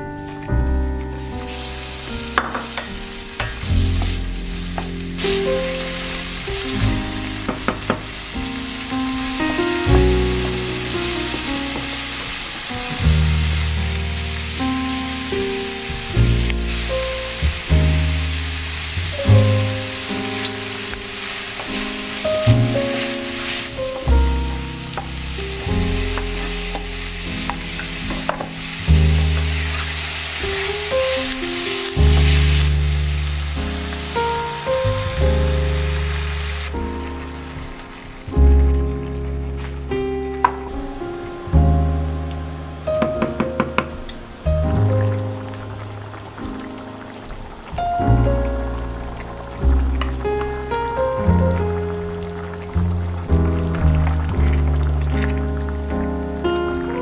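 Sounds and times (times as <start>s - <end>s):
background music: 0.0s - 57.0s
food sizzling in a pan: 1.2s - 38.3s.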